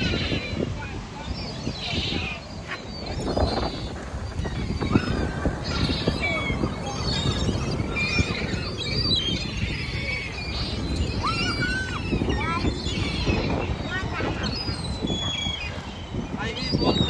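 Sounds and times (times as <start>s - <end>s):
gulls calling: 0.0s - 17.0s.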